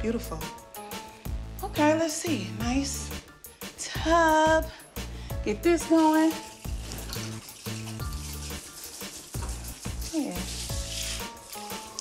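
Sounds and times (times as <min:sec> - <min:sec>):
shower water spraying into tub: 0:05.8 - 0:12.0.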